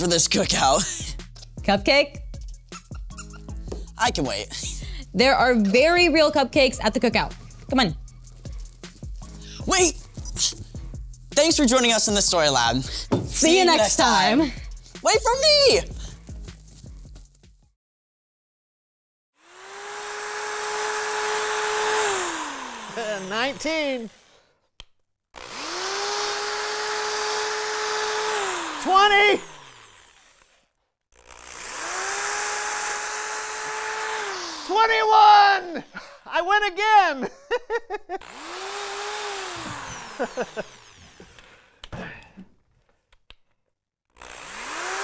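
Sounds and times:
sharp knocks: 13.0 - 13.6
electric drill motor whine: 19.4 - 24.4, 25.4 - 30.6, 31.2 - 34.7, 38.2 - 41.5, 44.2 - 45.0.

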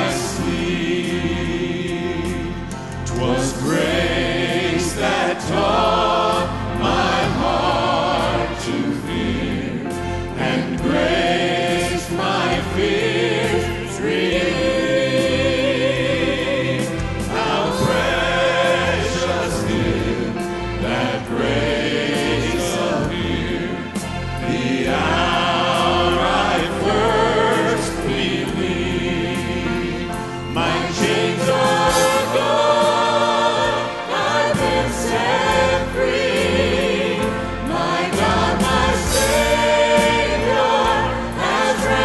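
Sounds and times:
instrumental accompaniment with bass: 0.0 - 42.0
mixed group singing gospel: 0.0 - 42.0.

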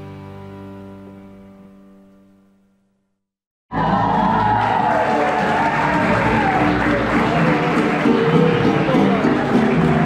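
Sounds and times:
acoustic guitars strumming: 5.1 - 10.0.

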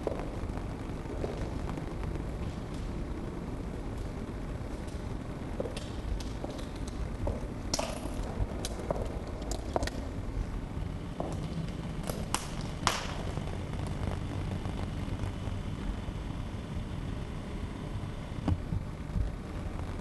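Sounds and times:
low outdoor rumble: 0.0 - 20.0.

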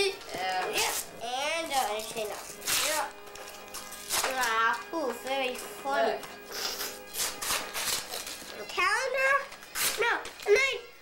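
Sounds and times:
young child's high voice: 0.0 - 3.1
quiet background music: 0.0 - 11.0.

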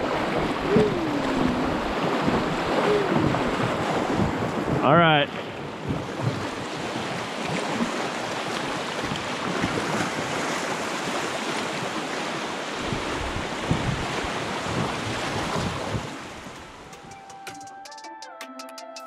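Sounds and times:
wind buffeting microphone: 0.0 - 11.2, 12.7 - 16.9
whitewater rapids rushing: 0.0 - 17.2.

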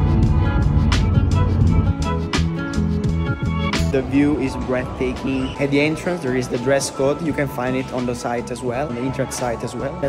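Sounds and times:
heavy bass: 0.0 - 6.6
background music with sustained chords: 0.0 - 10.0.

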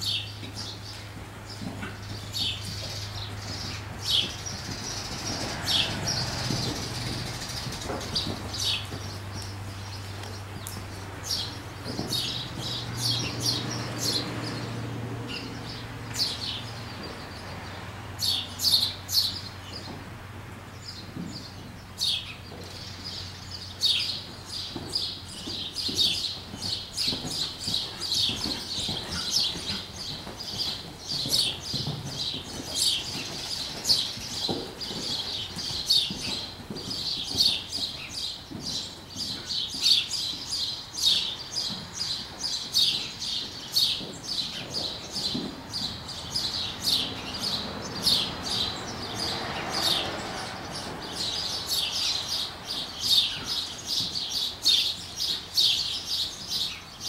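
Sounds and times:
small birds chirping rapidly: 0.0 - 20.0, 20.6 - 57.0.

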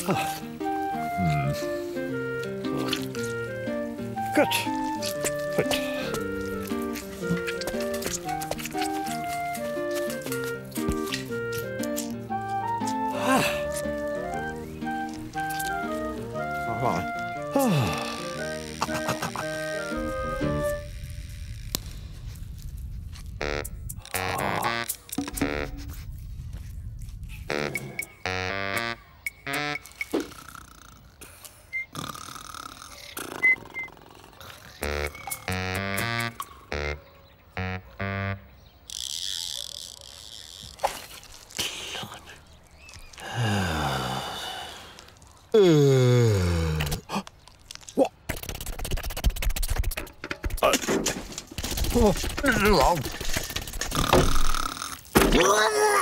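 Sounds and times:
light background music: 0.0 - 20.9
low rumble: 20.8 - 24.5, 25.3 - 28.3
comic sound effects: 23.4 - 26.0.

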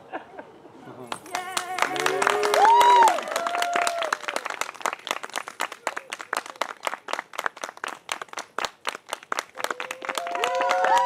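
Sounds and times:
audience clapping: 1.1 - 11.0.

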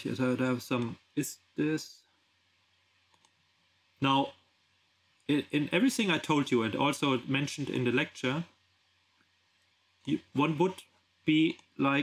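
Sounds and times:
computer mouse clicks: 3.1 - 3.4.

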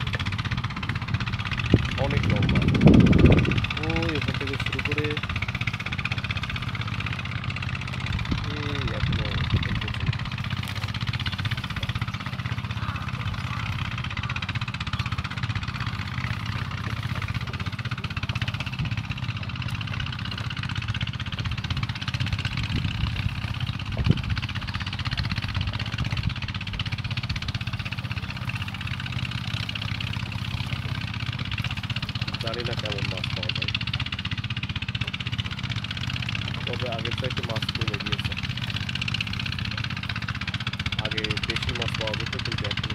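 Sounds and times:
low mechanical drone: 0.0 - 42.9
faint voices: 11.0 - 20.2.

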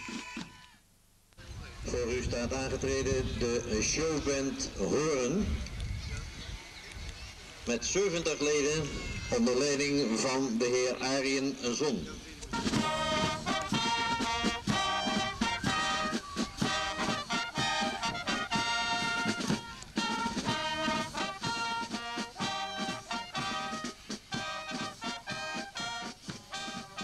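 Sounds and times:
brass chords: 12.4 - 27.0
steady drum beat: 12.4 - 27.0.

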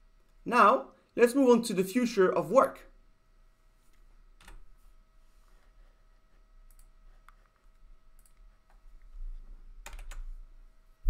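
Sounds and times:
faint electrical hum: 0.0 - 11.0
computer mouse clicking: 6.6 - 8.8, 9.8 - 10.3.

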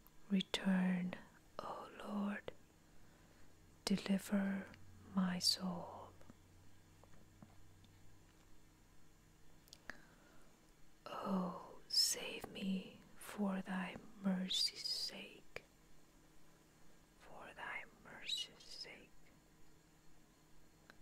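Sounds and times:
person whispering: 0.3 - 2.5, 3.9 - 6.2, 11.1 - 15.6, 17.2 - 19.1.

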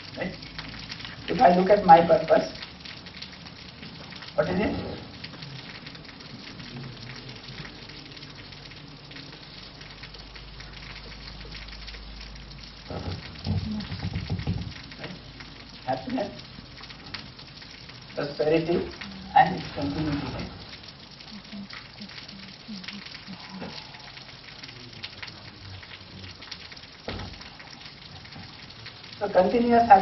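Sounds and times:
steady background hiss: 0.0 - 30.0
person murmuring: 12.9 - 14.0, 21.2 - 26.4.

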